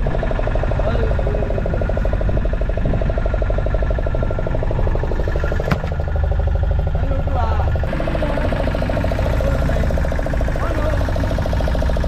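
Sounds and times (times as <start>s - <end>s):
boat engine running: 0.0s - 12.0s
sharp knock: 5.6s - 6.0s.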